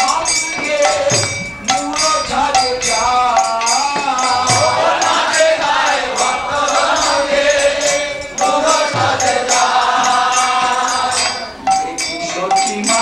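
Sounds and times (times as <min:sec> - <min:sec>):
devotional chanting to a melody: 0:00.0 - 0:13.0
steady percussion beat: 0:00.0 - 0:13.0.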